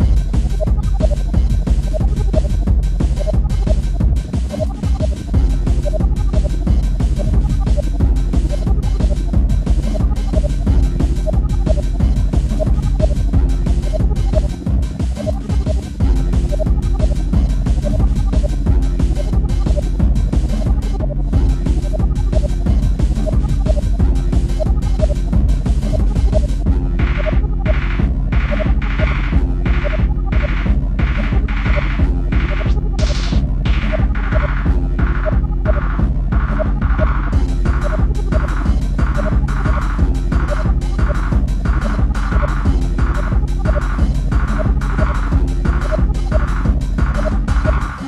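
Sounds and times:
fast electronic dance music: 0.0 - 48.0.

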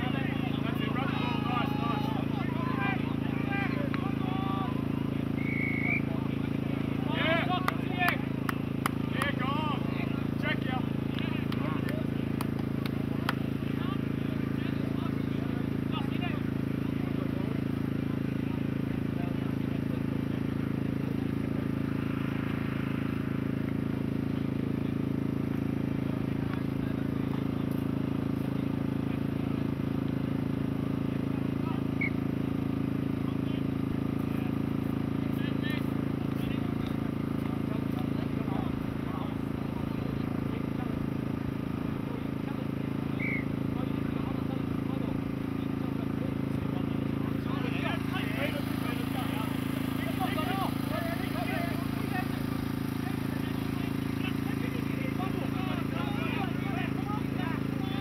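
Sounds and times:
faint distant shouts and voices: 0.0 - 58.0
steady low hum: 0.0 - 58.0.

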